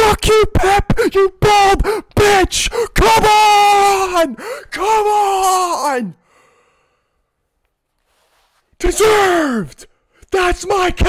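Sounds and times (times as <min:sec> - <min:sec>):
man shouting: 0:00.0 - 0:06.2, 0:08.8 - 0:11.0
breathy exhale: 0:06.2 - 0:07.4.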